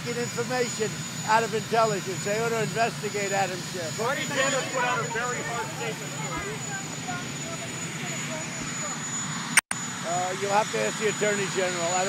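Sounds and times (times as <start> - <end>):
helicopter turbine engines whining: 0.0 - 12.0
distant voices asking a question: 1.3 - 9.1.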